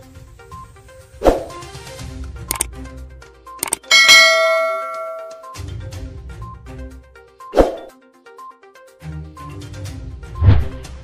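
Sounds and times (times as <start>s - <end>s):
low background music: 0.0s - 11.0s
quick clicks: 3.6s - 3.9s
bright bell ding: 3.6s - 5.6s.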